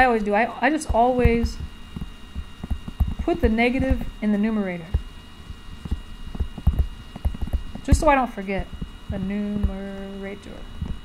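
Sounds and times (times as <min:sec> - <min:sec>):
stylus tapping on tablet screen: 0:05.9 - 0:07.9.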